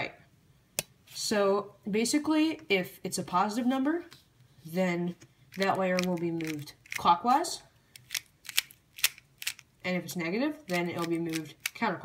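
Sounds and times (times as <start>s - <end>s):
plastic puzzle clicking: 5.6s - 7.1s, 8.0s - 9.7s, 10.7s - 11.8s.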